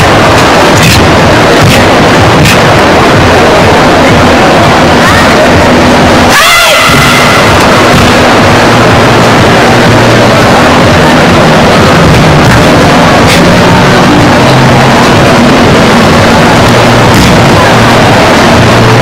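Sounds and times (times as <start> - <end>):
crowded hall din: 0.0 - 19.0
karate shout: 6.2 - 8.2.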